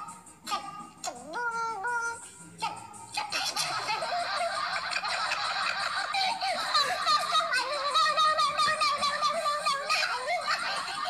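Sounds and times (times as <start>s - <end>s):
high-pitched squeaky laughter: 3.1s - 11.0s.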